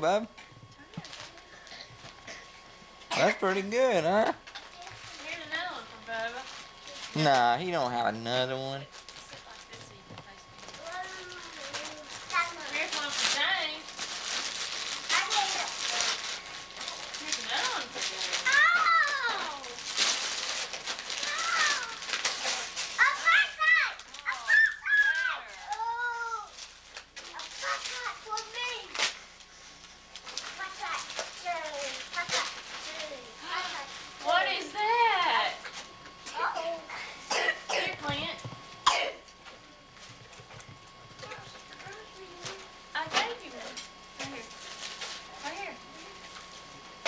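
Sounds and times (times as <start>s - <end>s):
wrapping paper crinkling and tearing: 1.0s - 2.2s, 3.4s - 35.9s, 43.3s - 46.9s
child calling out: 18.5s - 19.6s, 21.2s - 22.0s, 23.0s - 26.5s.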